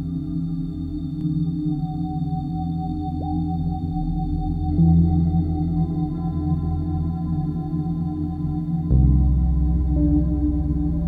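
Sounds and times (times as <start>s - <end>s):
low synthesizer drones: 4.7s - 11.0s.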